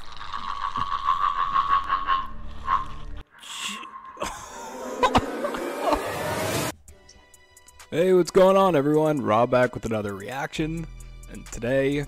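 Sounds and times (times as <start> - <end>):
jumble of noisy sounds: 4.8 - 6.7.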